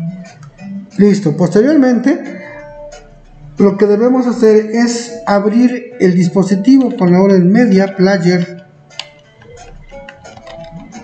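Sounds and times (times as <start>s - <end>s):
faint background music: 0.0s - 11.0s
keyboard keys clicking: 6.6s - 7.1s, 8.9s - 11.0s.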